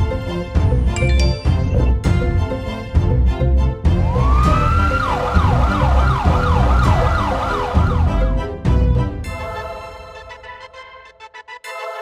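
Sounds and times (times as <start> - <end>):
police siren: 4.1 - 8.4.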